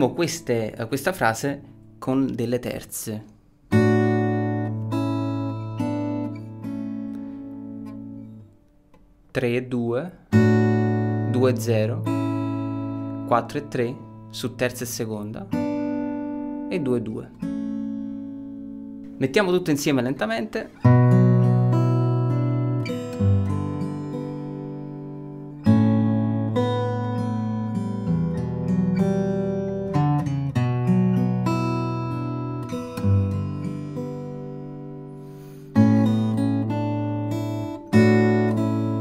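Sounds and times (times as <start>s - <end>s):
fingerstyle acoustic guitar: 3.3s - 9.2s, 10.2s - 19.9s, 20.6s - 39.0s.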